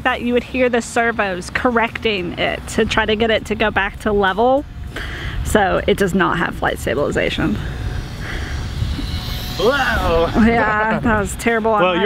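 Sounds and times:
wind rumbling on microphone: 0.0 - 11.9
small electric airplane whirring: 5.7 - 12.0
man laughing: 10.0 - 12.0.

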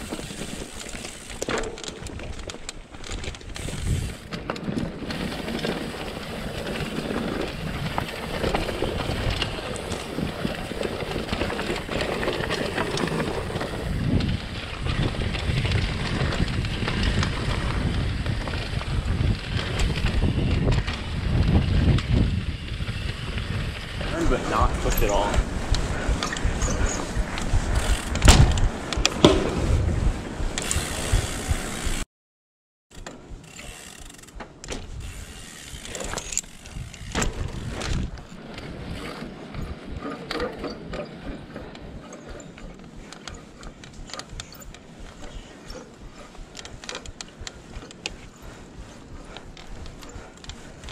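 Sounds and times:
bike clicking and creaking: 0.0 - 32.0, 32.9 - 50.9
bike tyres on dirt trail: 0.0 - 32.0, 32.9 - 50.9
wind buffeting microphone: 2.0 - 32.0, 34.7 - 50.9.

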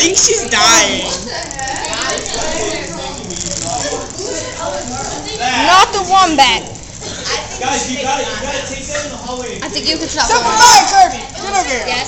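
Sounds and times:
marker legs chattering on paper: 0.0 - 12.0
small motor buzzing and rattling: 0.0 - 12.0.

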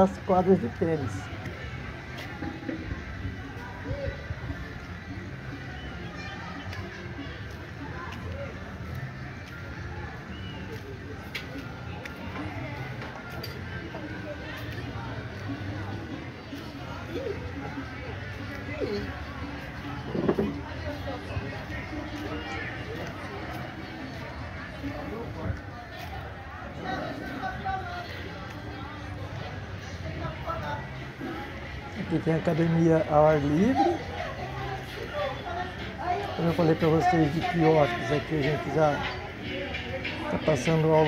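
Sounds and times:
distant people chatting: 0.0 - 41.0
faint distant voices: 0.0 - 41.0.

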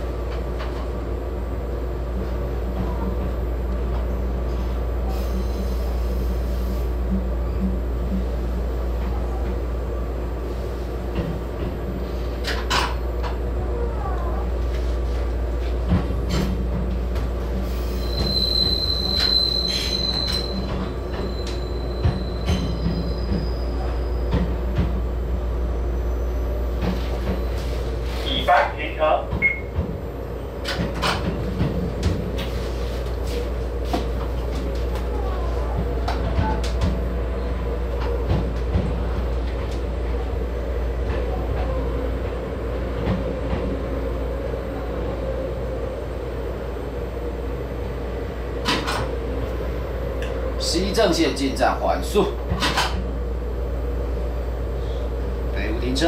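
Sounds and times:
train wheels and motors rumbling: 0.0 - 56.0
high wheel squeal: 17.7 - 24.3.

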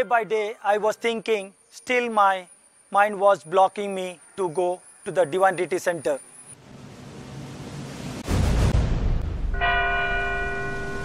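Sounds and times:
deep rumbling boom: 6.6 - 10.3
bell ringing: 9.6 - 11.0.

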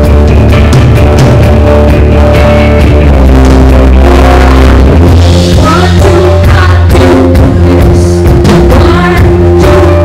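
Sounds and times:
electric guitar sustained notes: 0.0 - 10.0
live rock band playing: 0.0 - 10.0.

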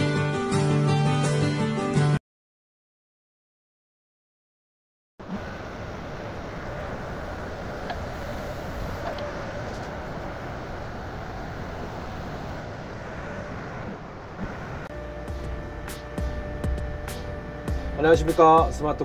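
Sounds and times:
background music: 0.0 - 2.2, 14.9 - 19.0
excavator engine running: 5.2 - 19.0.

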